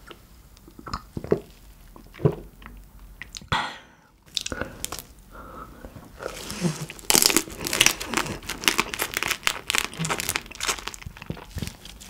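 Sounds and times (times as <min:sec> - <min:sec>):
chewing shrimp with wet crackling: 0:06.3 - 0:12.0.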